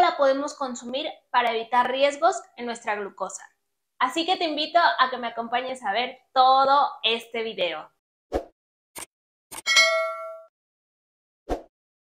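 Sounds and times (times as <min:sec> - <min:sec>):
bright bell-like ding: 0:09.7 - 0:10.5.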